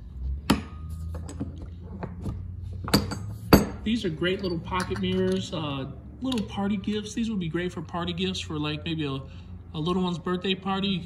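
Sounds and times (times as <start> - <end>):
sharp metal knocks: 0.4 - 1.4, 2.8 - 3.8.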